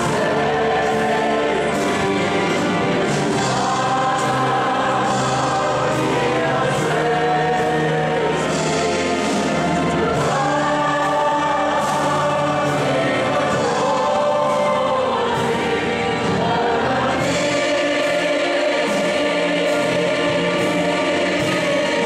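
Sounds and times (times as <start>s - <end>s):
congregation singing a hymn: 0.0s - 22.0s.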